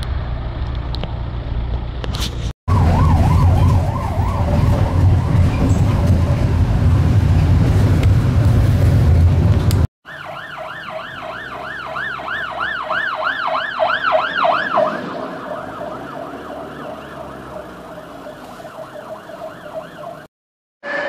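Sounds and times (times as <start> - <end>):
fire engine siren wailing: 2.7 - 6.5, 10.1 - 21.0.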